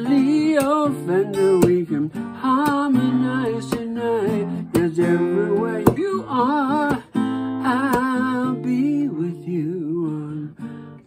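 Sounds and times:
man singing with vibrato: 0:00.0 - 0:11.0
strummed acoustic guitar: 0:00.0 - 0:11.0.

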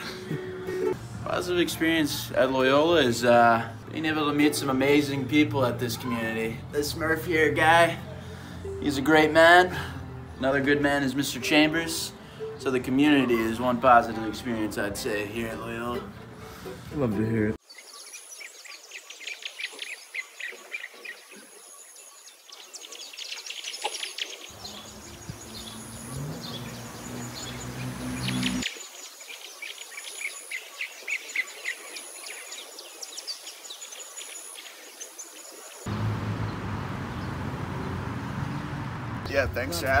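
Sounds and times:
songbirds chirping and singing: 0:00.0 - 0:38.8.

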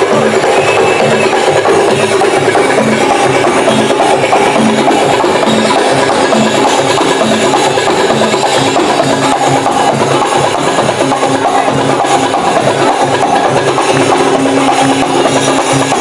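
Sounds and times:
darbuka drum rhythm: 0:00.0 - 0:16.0.

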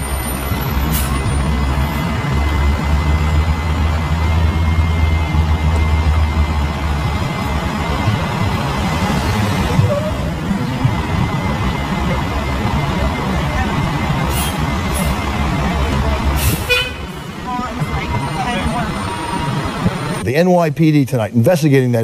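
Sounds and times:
heavy vehicle engine rumbling: 0:00.0 - 0:22.0
street traffic noise: 0:00.0 - 0:22.0.

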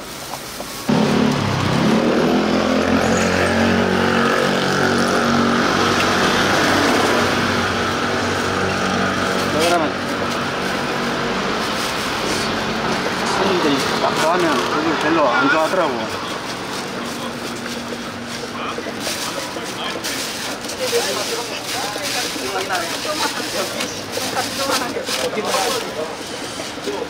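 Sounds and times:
vehicle engine running: 0:00.9 - 0:27.0.

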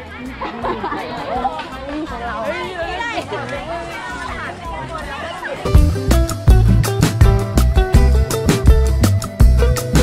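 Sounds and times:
girls chattering: 0:00.0 - 0:06.0
background music: 0:00.0 - 0:10.0.

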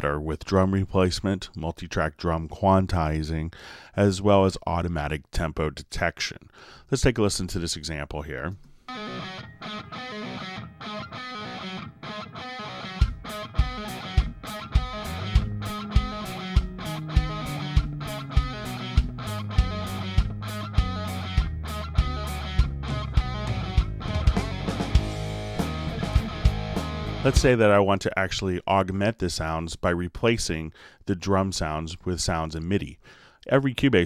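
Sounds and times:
guitar: 0:08.5 - 0:28.2
bass guitar notes: 0:12.7 - 0:27.9
acoustic drum kit beat: 0:13.0 - 0:27.6.

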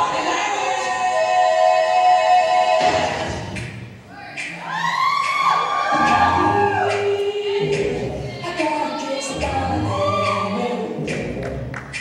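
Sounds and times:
choir singing a cappella: 0:00.0 - 0:03.8, 0:05.9 - 0:12.0.

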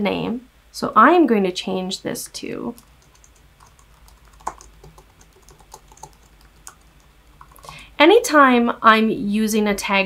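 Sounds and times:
computer keyboard typing: 0:02.8 - 0:07.8.

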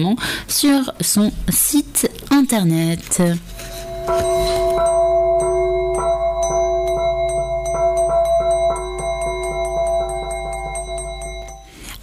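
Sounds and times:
low hum: 0:03.5 - 0:11.8
radio jingle with chiming notes: 0:03.6 - 0:07.6.

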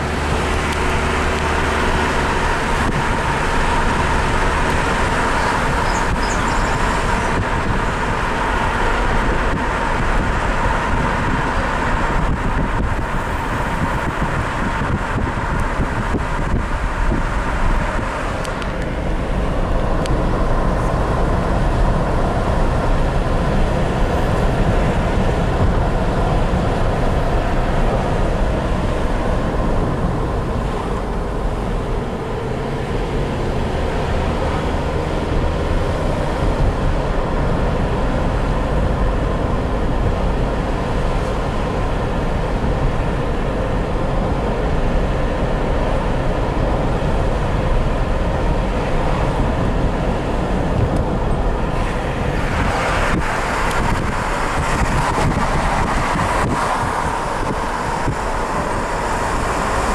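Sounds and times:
car engine low rumble: 0:00.0 - 0:59.9
tyres running on asphalt: 0:00.0 - 0:59.9.

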